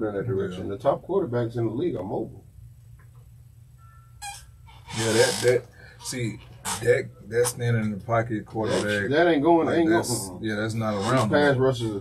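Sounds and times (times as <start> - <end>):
steady low hum: 0.0 - 12.0
person speaking: 4.9 - 12.0
sharp intake of breath: 5.7 - 6.1.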